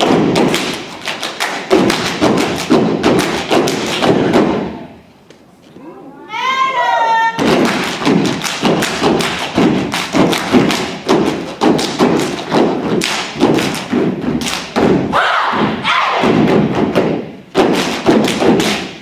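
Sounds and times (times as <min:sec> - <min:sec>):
stomping on wooden stage: 0:00.0 - 0:00.9, 0:01.6 - 0:04.8, 0:07.4 - 0:19.0
clapping in unison: 0:00.4 - 0:04.2, 0:07.5 - 0:14.7.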